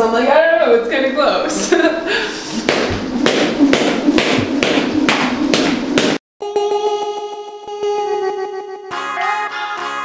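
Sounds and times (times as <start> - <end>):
feet landing lightly: 2.6 - 6.2
jump rope slapping floor mat: 2.6 - 6.2
rope swish: 2.6 - 6.2.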